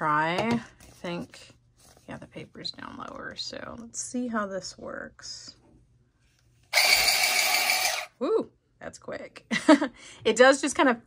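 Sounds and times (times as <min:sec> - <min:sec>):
electric letter opener motor whirring: 0:06.7 - 0:08.1.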